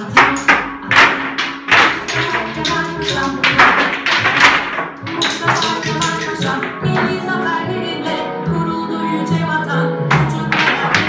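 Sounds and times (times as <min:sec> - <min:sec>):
children tapping rhythm: 0:00.0 - 0:07.6, 0:10.1 - 0:11.0
recorded children's song: 0:00.0 - 0:11.0.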